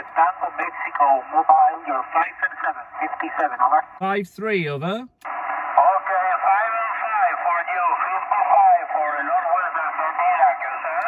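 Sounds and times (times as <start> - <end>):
tinny radio speech: 0.0 - 5.1, 5.8 - 11.0
radio band hiss: 4.8 - 11.0.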